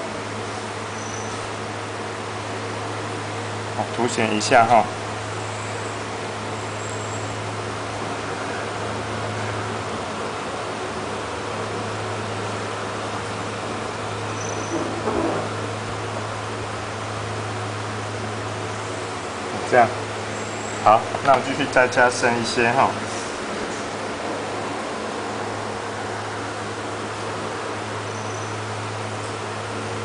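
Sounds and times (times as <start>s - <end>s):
air conditioner hum and hiss: 0.0s - 30.0s.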